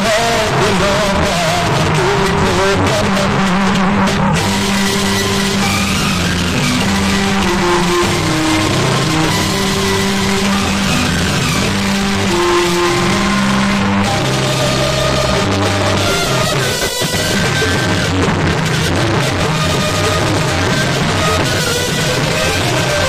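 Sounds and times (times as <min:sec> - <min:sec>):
distorted music from horn loudspeakers: 0:00.0 - 0:23.0.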